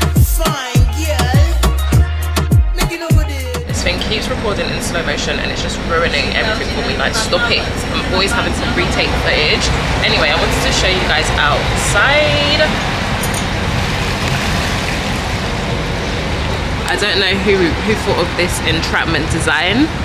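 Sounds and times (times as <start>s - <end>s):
indistinct voices: 3.7s - 13.6s
motor yacht engine hum: 3.7s - 20.0s
rush of wind and water: 7.2s - 20.0s.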